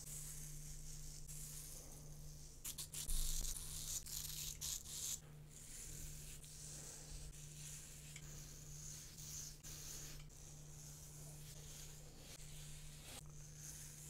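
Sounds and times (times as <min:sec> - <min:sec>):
razor scraping over scalp: 0:00.0 - 0:14.0
steady low hum: 0:00.0 - 0:14.0.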